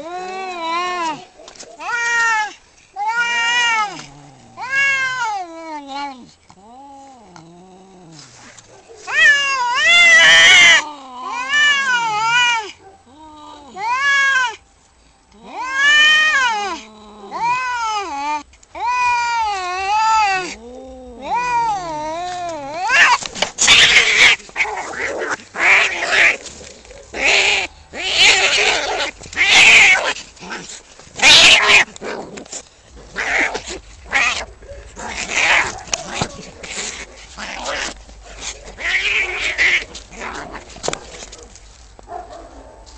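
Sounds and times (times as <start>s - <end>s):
cats howling: 0.0s - 7.2s, 9.0s - 14.6s, 15.4s - 30.6s, 31.2s - 32.0s, 33.0s - 41.6s
cats screeching while fighting: 1.8s - 4.0s, 4.6s - 6.1s, 9.0s - 12.8s, 13.7s - 14.6s, 15.4s - 20.6s, 21.2s - 32.4s, 33.1s - 41.3s.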